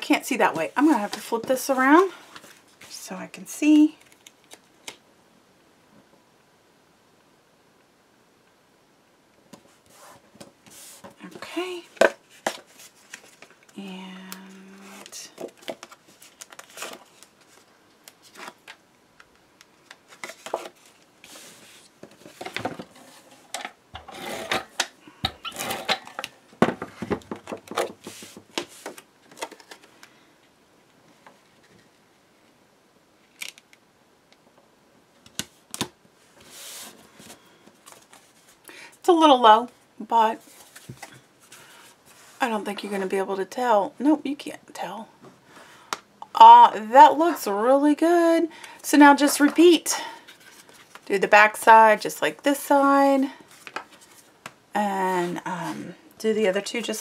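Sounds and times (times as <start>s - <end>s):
paper rustling and sliding: 9.7s - 11.2s, 20.0s - 23.5s, 27.7s - 29.9s, 36.4s - 38.6s.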